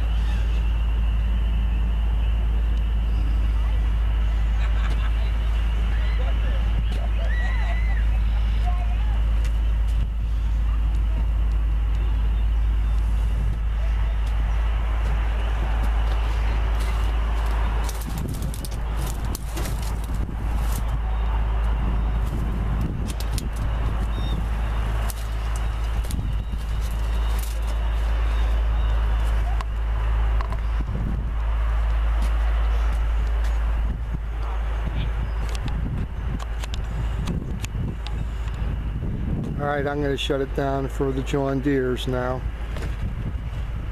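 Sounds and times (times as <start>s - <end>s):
faint voices: 0.0s - 38.9s
wind rumble on microphone: 0.0s - 43.9s
scattered clicks: 23.0s - 24.2s, 36.4s - 38.6s.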